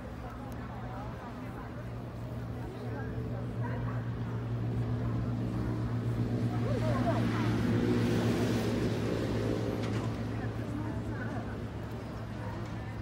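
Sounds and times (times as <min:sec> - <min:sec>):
faint voices: 0:00.0 - 0:13.0
low engine hum: 0:00.0 - 0:13.0.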